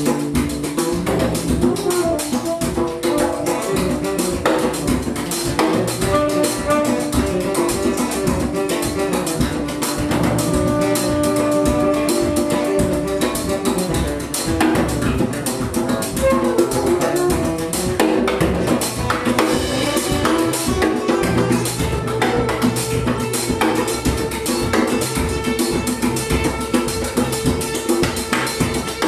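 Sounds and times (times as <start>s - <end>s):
live band music: 0.0s - 29.0s.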